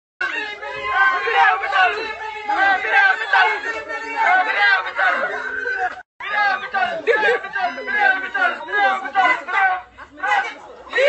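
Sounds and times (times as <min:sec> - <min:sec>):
people talking: 0:00.2 - 0:11.0.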